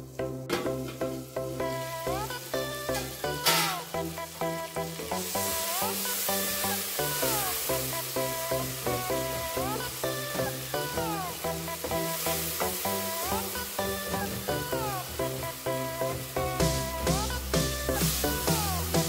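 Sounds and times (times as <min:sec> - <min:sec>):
background music with beat: 0:00.0 - 0:19.0
vegetables sizzling in oil: 0:00.8 - 0:19.0.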